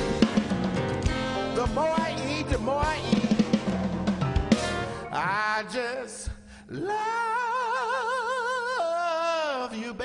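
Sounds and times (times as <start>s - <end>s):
drum kit: 0.0s - 5.2s
electric bass guitar: 0.0s - 5.2s.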